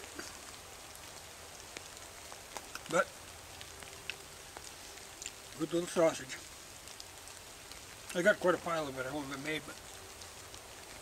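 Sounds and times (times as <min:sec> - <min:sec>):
raindrops ticking: 0:00.0 - 0:11.0.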